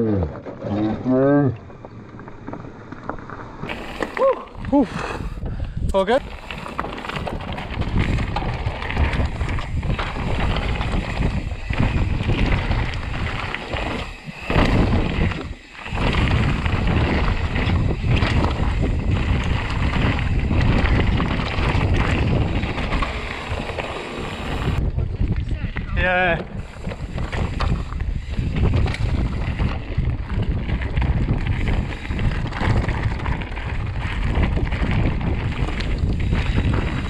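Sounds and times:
bike tyres rattling over stones: 0:00.0 - 0:37.0
wind buffeting microphone: 0:03.3 - 0:37.0.

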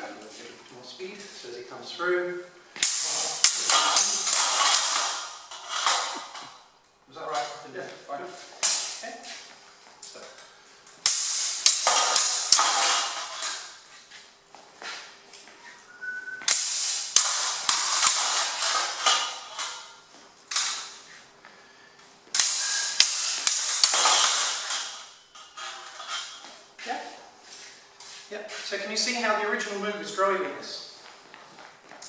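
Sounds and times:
swords and bucklers clashing: 0:02.8 - 0:06.6, 0:08.6 - 0:09.1, 0:11.0 - 0:13.8, 0:16.4 - 0:21.0, 0:22.3 - 0:26.6.

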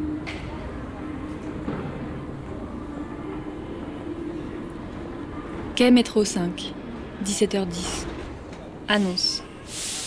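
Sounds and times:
low rumble of a train: 0:00.0 - 0:10.0.

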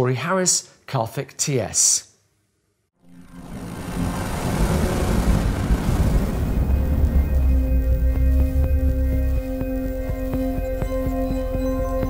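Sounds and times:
intro sting: 0:03.0 - 0:10.4
deep bass rumble: 0:03.2 - 0:12.0
rush of noise: 0:03.3 - 0:08.8.

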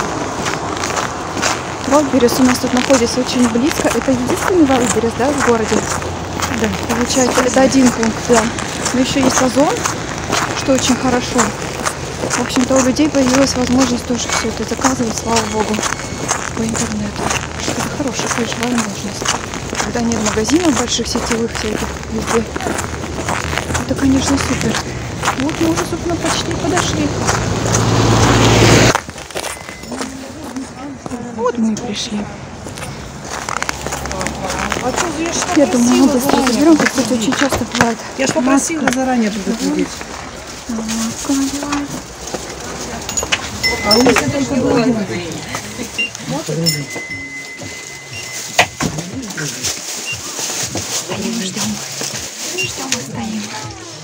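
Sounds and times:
car engine running: 0:00.0 - 0:30.7
footsteps on snow: 0:00.0 - 0:54.0.

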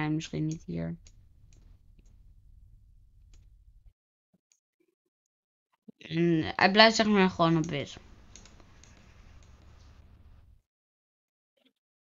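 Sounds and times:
computer mouse clicks: 0:03.2 - 0:03.6, 0:07.4 - 0:10.5
background hiss and hum: 0:06.9 - 0:10.6.

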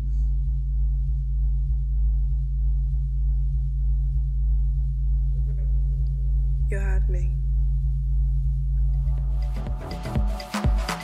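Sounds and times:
deep synthesized hum: 0:00.0 - 0:11.0
soft electronic pulsing: 0:00.0 - 0:11.0.

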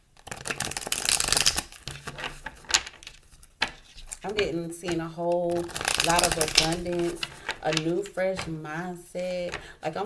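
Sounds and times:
cards being shuffled: 0:00.2 - 0:08.6.

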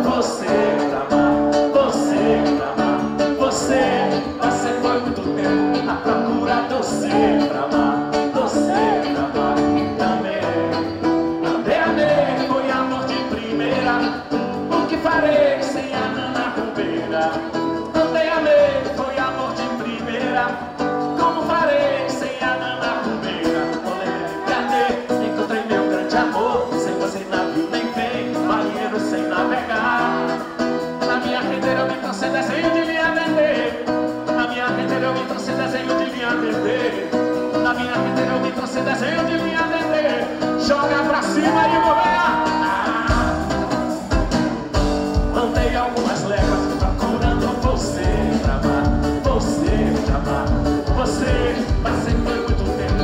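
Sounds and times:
electric guitars: 0:00.0 - 0:53.0
live band playing: 0:00.0 - 0:53.0
person singing: 0:00.0 - 0:53.0
percussion beat: 0:39.8 - 0:53.0.

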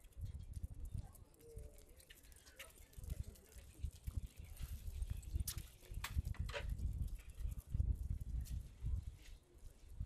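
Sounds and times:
paws and footsteps on pavement: 0:00.0 - 0:09.8.

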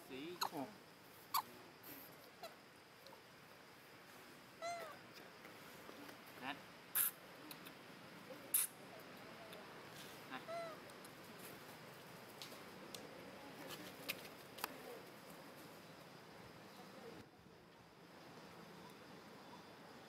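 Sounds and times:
faint outdoor background: 0:00.0 - 0:20.0.

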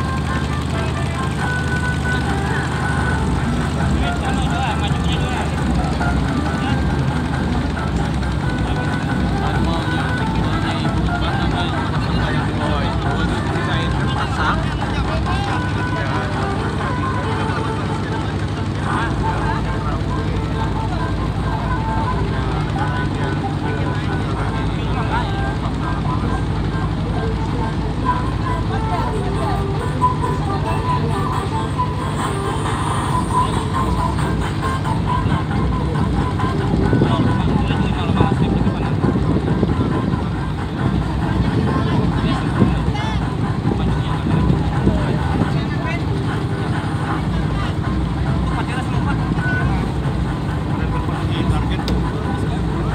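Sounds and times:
boat engine running: 0:00.0 - 0:52.9
people talking: 0:00.0 - 0:52.9.

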